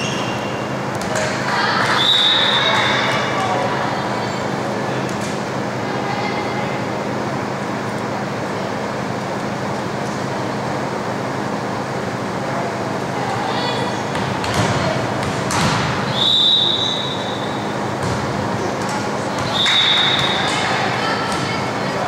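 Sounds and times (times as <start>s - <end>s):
chatter of voices: 1.0s - 15.5s, 17.4s - 22.0s
referee's whistle blasts: 1.9s - 2.7s, 16.1s - 17.7s, 19.4s - 20.5s.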